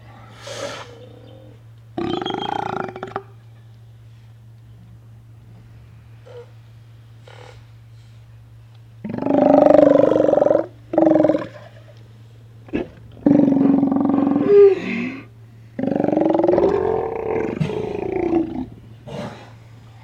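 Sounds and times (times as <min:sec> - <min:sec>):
sea lions roaring: 0:09.0 - 0:11.8, 0:12.7 - 0:19.5.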